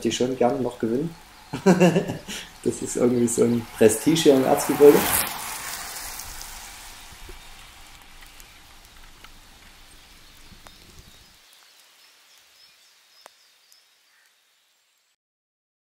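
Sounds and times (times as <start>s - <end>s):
light rain pattering: 0.0s - 15.2s
sharp drip ticks: 5.6s - 12.5s.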